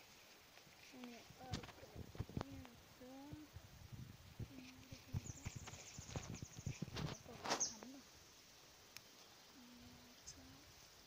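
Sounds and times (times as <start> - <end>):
weeds rustling and snapping: 0.0 - 2.8, 4.4 - 8.0.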